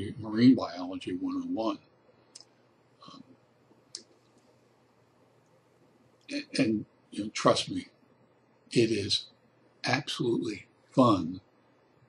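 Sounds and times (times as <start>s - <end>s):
person saying um: 6.3s - 6.8s.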